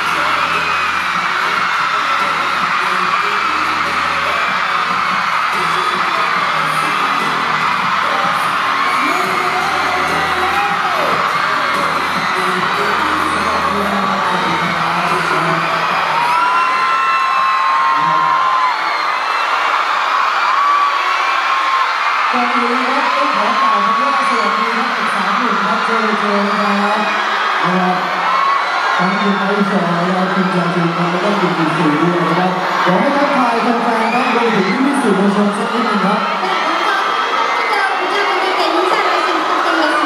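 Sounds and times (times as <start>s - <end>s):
pop music with bass beat: 0.0s - 17.3s
crowd screaming and cheering: 0.0s - 40.0s.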